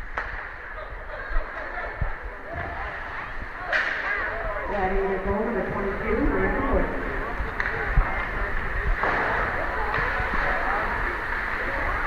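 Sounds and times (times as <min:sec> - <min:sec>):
hockey sticks and puck clacking: 0:00.0 - 0:00.5, 0:02.6 - 0:04.3, 0:07.5 - 0:08.4, 0:09.0 - 0:12.0
faint distant voices: 0:00.0 - 0:12.0.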